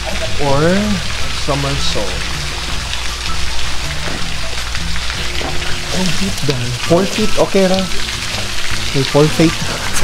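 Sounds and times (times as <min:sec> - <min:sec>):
running water hiss: 0:00.0 - 0:10.0.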